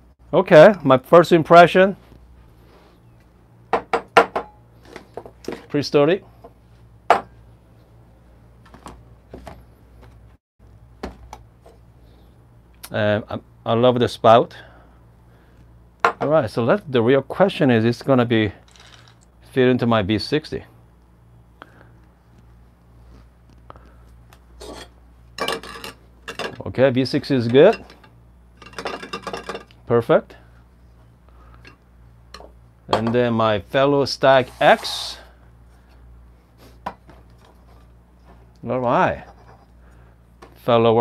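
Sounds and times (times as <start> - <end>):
glass scraping on desk: 24.6 - 24.9.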